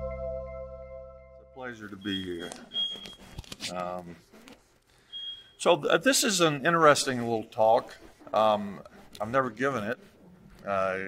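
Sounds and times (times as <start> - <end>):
jingle: 0.0 - 1.6.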